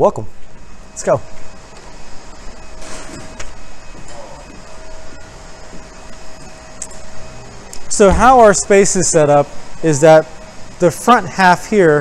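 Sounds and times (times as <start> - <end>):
faint steady whine: 0.0 - 12.0
machine hum of printers: 0.0 - 12.0.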